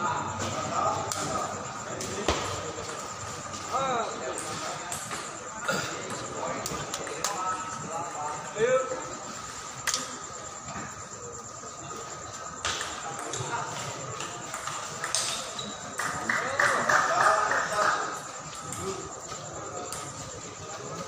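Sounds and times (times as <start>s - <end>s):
spectators chatter: 0.0s - 21.0s.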